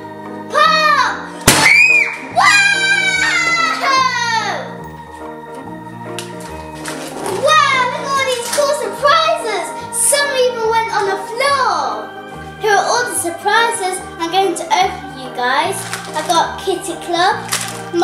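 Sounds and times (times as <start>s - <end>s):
background music: 0.0s - 18.0s
child squealing: 0.6s - 4.7s
balloon bursting bang: 1.4s - 2.3s.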